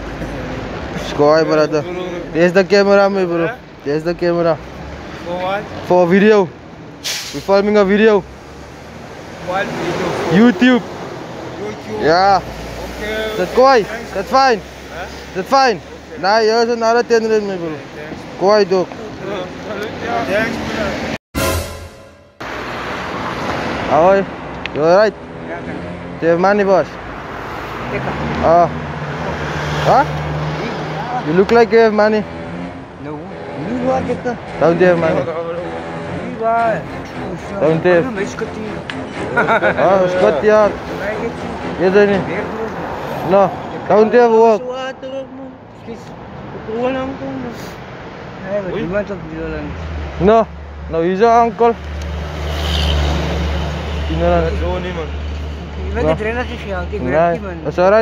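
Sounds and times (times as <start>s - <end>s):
road traffic rumble: 0.0s - 21.2s, 21.8s - 58.0s
man talking: 0.2s - 4.6s, 5.2s - 6.6s, 7.4s - 8.3s, 9.4s - 10.9s, 11.6s - 21.1s, 29.8s - 32.3s, 33.0s - 38.8s, 39.6s - 47.8s, 48.4s - 51.8s, 54.1s - 58.0s
vehicle driving past: 8.2s - 16.2s, 22.4s - 46.7s, 51.9s - 55.9s.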